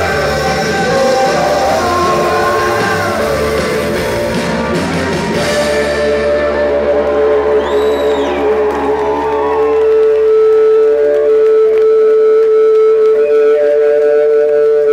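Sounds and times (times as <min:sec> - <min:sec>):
high whistle: 0:05.2 - 0:08.6.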